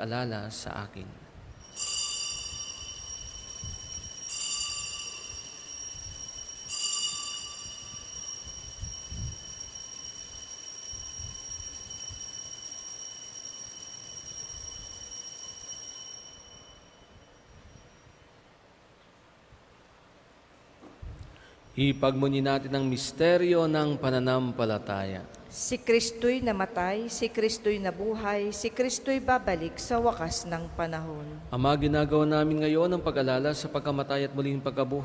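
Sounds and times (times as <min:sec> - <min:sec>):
altar bells ringing: 0:01.6 - 0:18.4.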